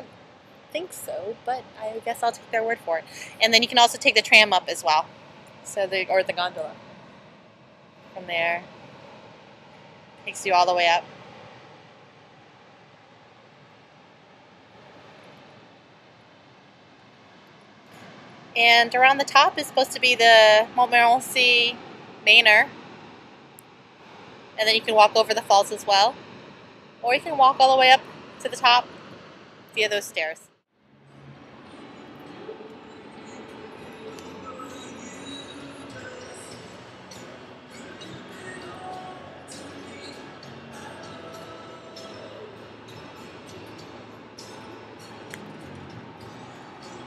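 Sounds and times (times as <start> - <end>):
faint outdoor hiss: 0.0 - 47.0.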